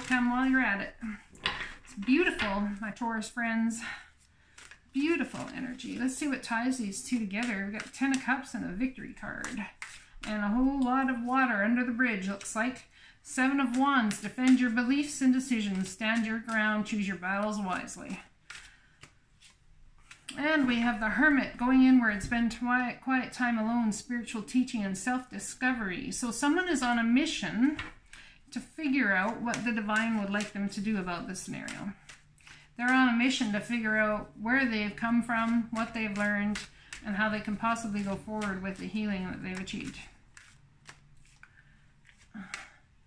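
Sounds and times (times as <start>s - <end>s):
cards rustling: 0.0s - 21.1s, 26.8s - 42.7s.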